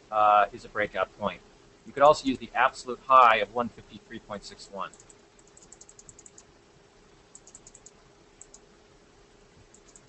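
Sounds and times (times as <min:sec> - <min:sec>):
low steady hum: 0:00.0 - 0:10.0
typing on computer keyboard: 0:04.9 - 0:06.5, 0:07.4 - 0:08.6, 0:09.7 - 0:10.0.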